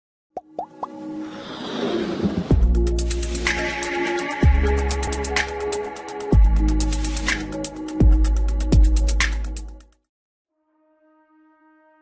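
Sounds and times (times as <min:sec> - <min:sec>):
electronic music: 0:02.5 - 0:09.8.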